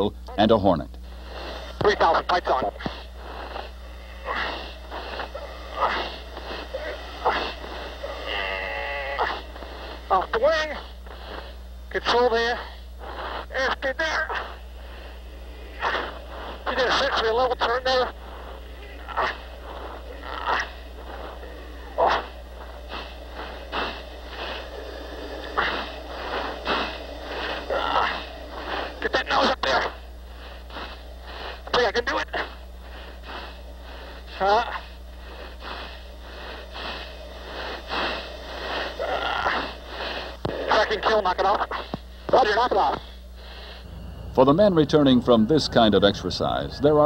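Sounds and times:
steady low hum: 0:00.0 - 0:47.0
strained breathing and grunts: 0:02.7 - 0:44.5.

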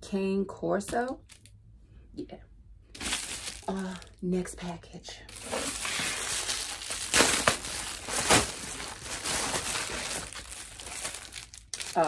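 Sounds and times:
plastic packaging crinkling: 0:02.9 - 0:04.1, 0:05.3 - 0:12.0
plastic ripping: 0:03.0 - 0:04.0, 0:05.3 - 0:12.0.

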